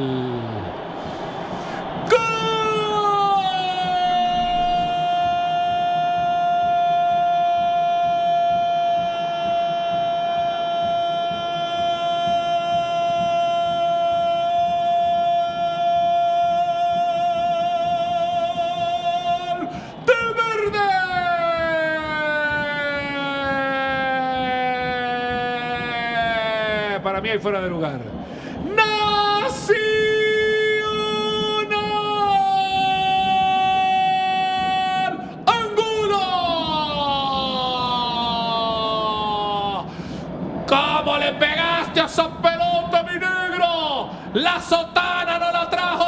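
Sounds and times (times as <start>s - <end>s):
quick breath: 0.0s - 2.0s, 19.7s - 20.0s, 28.2s - 28.6s, 39.9s - 40.4s.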